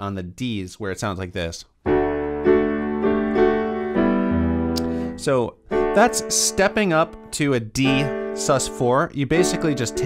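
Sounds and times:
digital piano chords: 1.8s - 10.0s.

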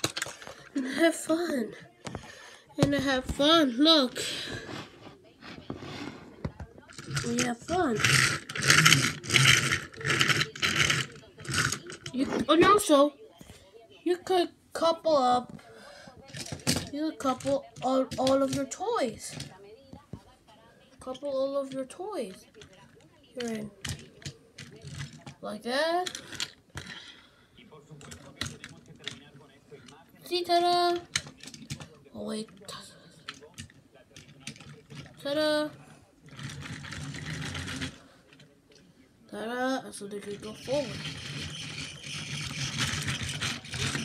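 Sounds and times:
plastic toy cars clicking: 0.0s - 1.4s, 6.5s - 13.0s, 16.3s - 19.6s, 21.0s - 27.2s, 27.9s - 38.8s, 40.0s - 44.0s.

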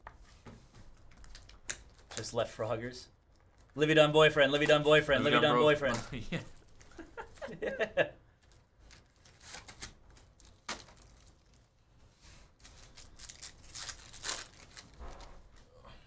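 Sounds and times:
cards rustling: 0.7s - 2.4s, 3.3s - 7.6s, 8.4s - 11.7s, 12.6s - 15.6s
wrapper tearing and crinkling: 1.1s - 2.3s, 5.9s - 7.5s, 8.4s - 11.8s, 12.6s - 15.6s.

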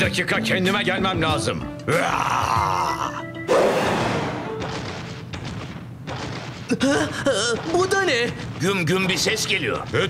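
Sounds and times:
background music: 0.0s - 10.0s
cartoon dinosaur wavering vocal: 1.9s - 3.3s
loud thud: 3.6s - 6.7s.

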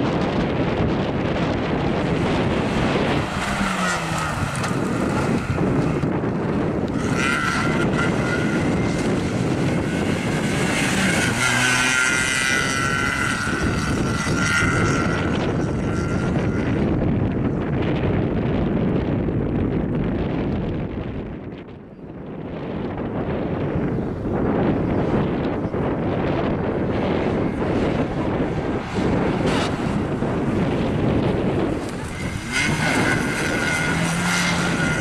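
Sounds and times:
car engine revving: 0.0s - 18.6s, 25.1s - 35.0s
wind on microphone: 0.0s - 35.0s.

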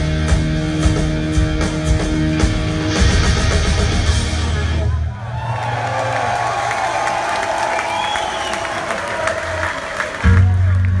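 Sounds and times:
hard rock band playing: 0.0s - 5.2s
crowd cheering and whistling: 4.7s - 10.8s.

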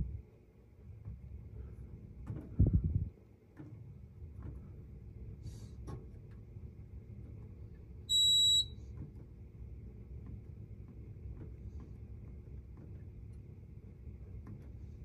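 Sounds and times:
short high beep: 8.1s - 8.8s.

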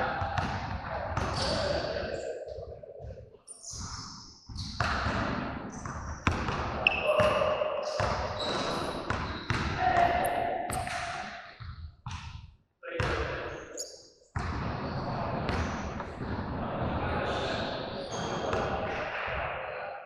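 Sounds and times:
people's voices: 0.0s - 3.2s, 6.8s - 11.3s, 14.8s - 20.0s.

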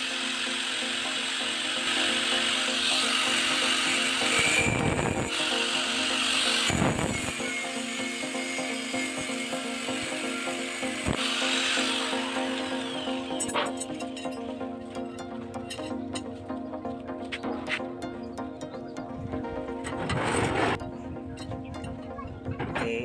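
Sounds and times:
angle grinder cutting steel: 0.0s - 16.3s
background music: 0.0s - 23.0s.

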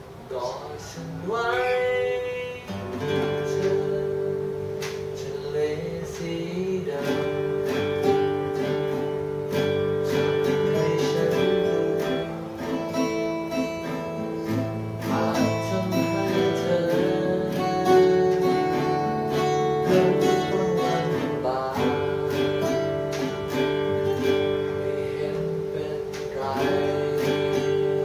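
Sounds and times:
acoustic guitars strumming chords: 0.0s - 28.0s.

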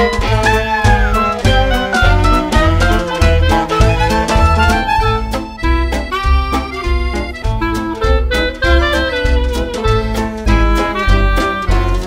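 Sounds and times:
instrumental music with bass beat: 0.0s - 12.0s.

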